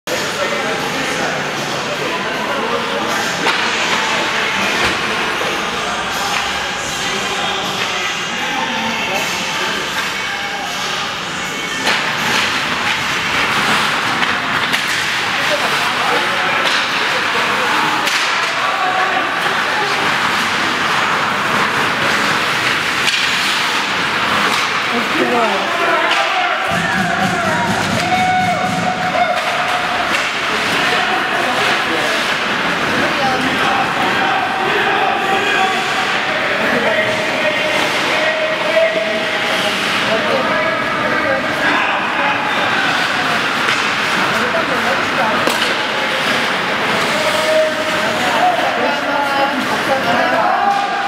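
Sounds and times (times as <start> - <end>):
hockey stick clack: 3.4 - 5.1, 11.8 - 18.6, 19.4 - 25.2, 26.0 - 32.9, 43.0 - 48.2
distant shouts: 25.6 - 30.2.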